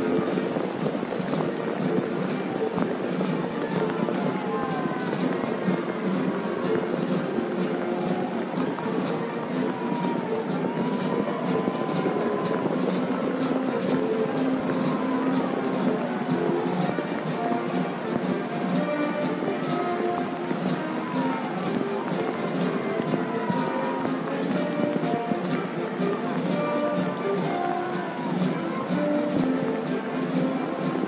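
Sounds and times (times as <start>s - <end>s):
band music with held notes: 0.0s - 31.0s
outdoor background noise: 0.0s - 31.0s.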